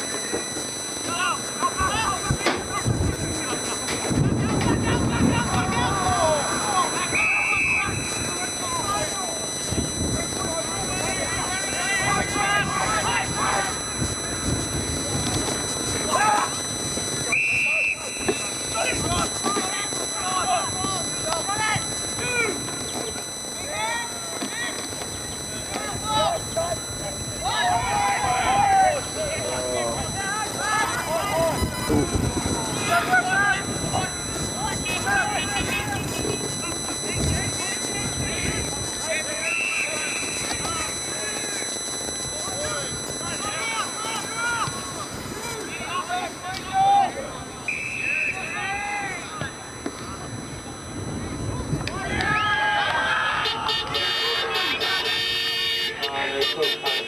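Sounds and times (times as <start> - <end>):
whistle blasts: 0.0 - 50.3, 51.0 - 57.0
players and spectators shouting: 0.9 - 41.7, 42.3 - 49.8, 51.6 - 57.0.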